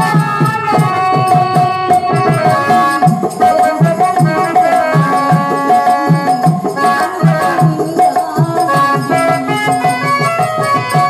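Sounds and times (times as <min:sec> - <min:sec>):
harmonium melody: 0:00.0 - 0:11.0
mridangam drum beat: 0:00.0 - 0:11.0.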